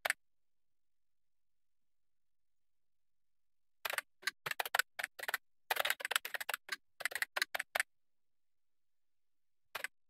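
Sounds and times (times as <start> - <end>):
computer keyboard typing: 3.9 - 7.8.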